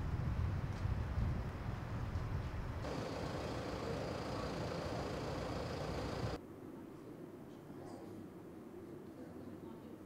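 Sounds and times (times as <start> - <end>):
faint high whine: 2.8 - 6.4
road traffic hum: 2.8 - 6.4.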